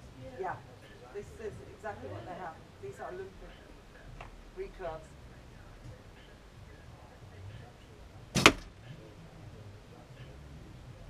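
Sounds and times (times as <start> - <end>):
bow string snap: 8.4 - 8.7.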